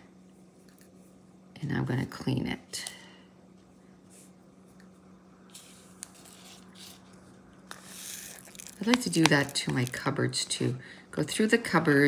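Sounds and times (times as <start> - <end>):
steady low hum: 0.0 - 12.0
plastic rustling and scraping: 5.5 - 10.1.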